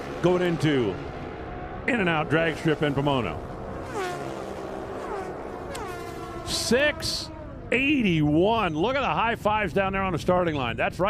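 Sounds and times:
racing motorcycles at full throttle: 0.0 - 8.4.

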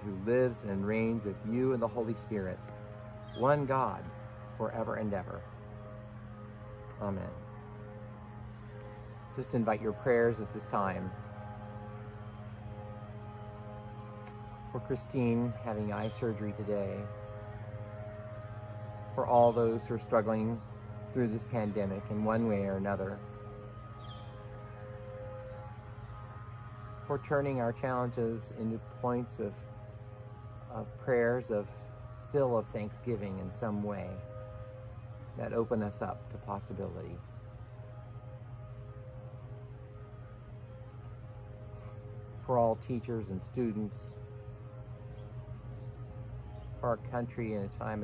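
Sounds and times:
insects chirring: 0.0 - 48.0
low steady hum: 0.0 - 48.0.

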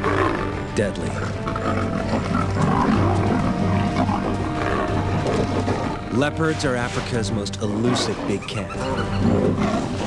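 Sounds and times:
big cat growling: 0.0 - 6.2, 7.6 - 10.0
droning background music: 0.0 - 10.0.

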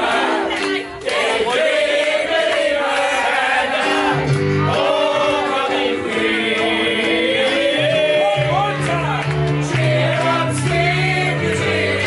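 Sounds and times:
crowd singing along: 0.0 - 12.0
piano chords: 0.0 - 12.0
bass notes: 4.0 - 12.0
man singing into a microphone: 4.9 - 9.0.

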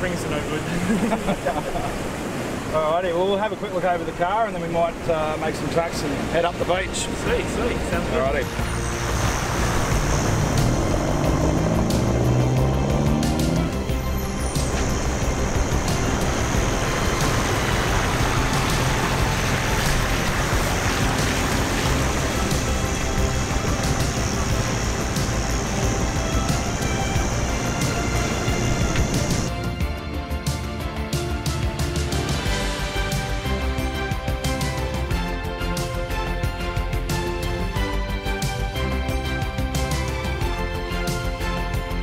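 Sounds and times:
wind noise: 6.1 - 29.6
engine revving: 7.8 - 29.5.

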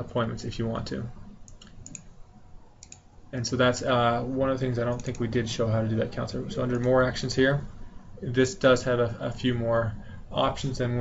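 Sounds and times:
computer mouse clicks: 1.4 - 2.1, 2.8 - 3.1, 4.9 - 5.3.

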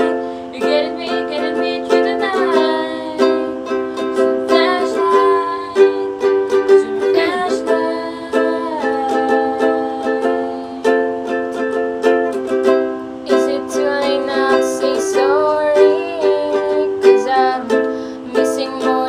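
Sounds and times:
ukulele strumming: 0.0 - 19.0
young female voices singing: 4.2 - 10.9, 13.3 - 19.0.

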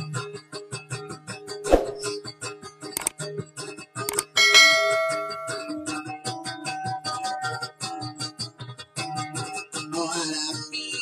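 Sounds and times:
bright bell chime: 4.4 - 6.1.

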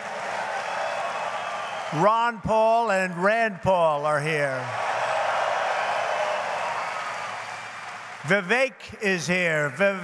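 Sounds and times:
large audience applauding: 0.0 - 2.4, 4.6 - 10.0.

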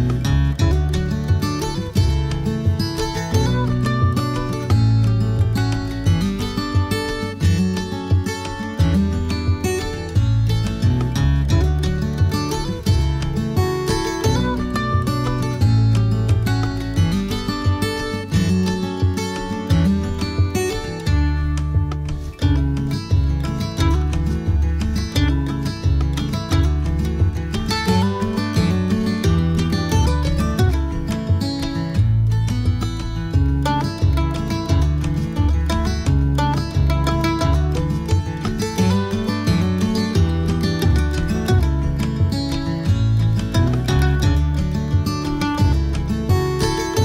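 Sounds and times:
plucked guitar: 0.0 - 47.0
steady bass line: 0.0 - 47.0.

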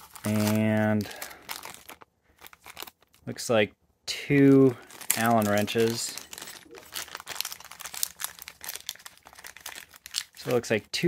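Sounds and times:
plastic bag crinkling: 0.0 - 3.3, 4.6 - 10.8.

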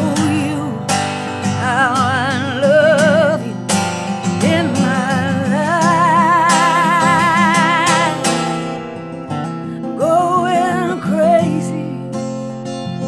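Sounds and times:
woman singing with vibrato: 0.0 - 8.8, 9.8 - 12.4
strummed acoustic guitar: 0.0 - 13.0.

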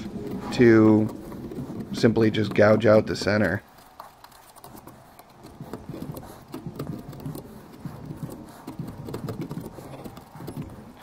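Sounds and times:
gouge carving wood: 0.0 - 11.0.

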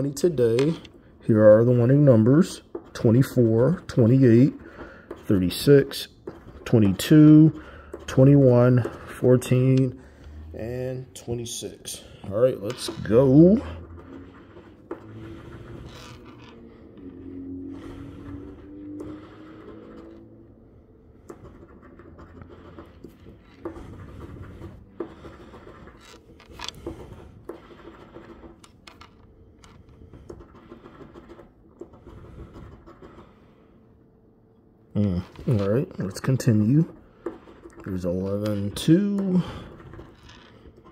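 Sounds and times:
coin scratching lottery ticket: 0.0 - 10.0, 10.7 - 20.4, 21.2 - 33.6, 35.1 - 40.9.

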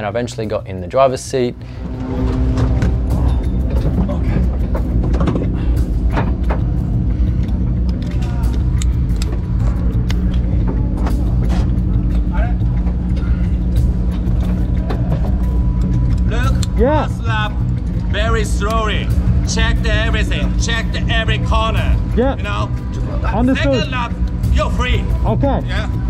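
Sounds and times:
background music: 0.0 - 26.0
car engine idling: 1.5 - 26.0.

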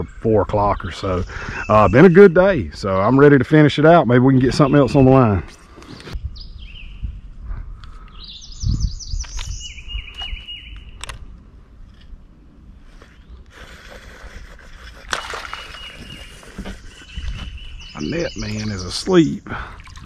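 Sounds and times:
birds singing: 0.0 - 11.1, 13.0 - 20.0
sharp clicks: 9.2 - 11.2.

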